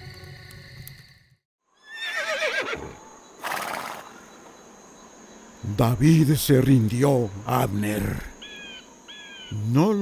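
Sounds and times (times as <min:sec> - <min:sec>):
horse whinnying: 0:01.8 - 0:04.0.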